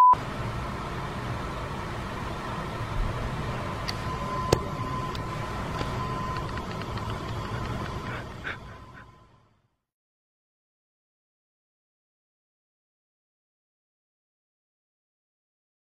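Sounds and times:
low rumble and hiss: 0.2s - 9.7s
test-tone bleep: 4.1s - 5.2s.

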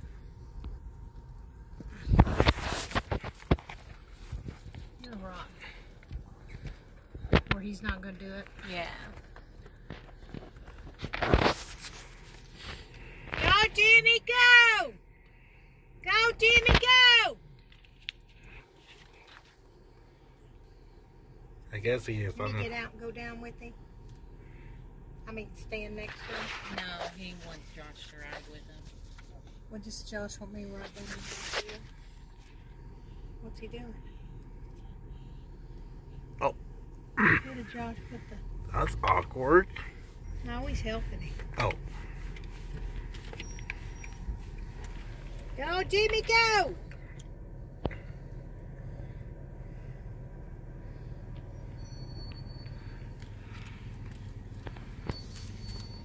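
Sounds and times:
car cabin background noise: 0.0s - 56.0s.

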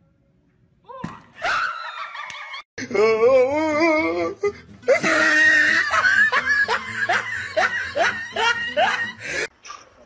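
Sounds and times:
person laughing hard: 4.9s - 9.5s.

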